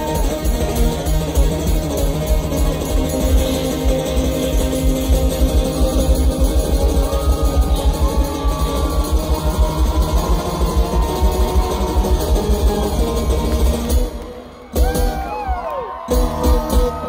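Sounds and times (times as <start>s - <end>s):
guitar: 0.0s - 17.0s
live concert music: 0.0s - 17.0s.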